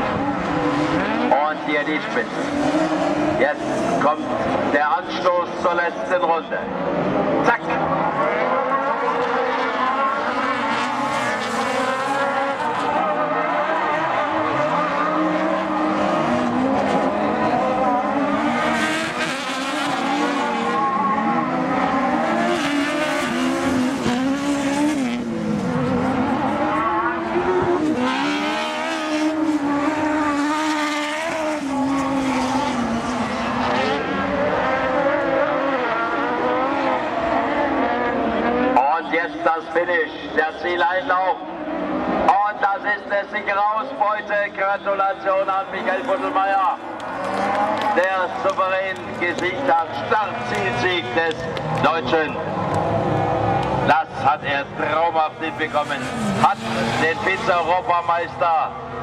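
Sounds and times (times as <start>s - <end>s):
racing buggy engines: 0.0s - 59.0s.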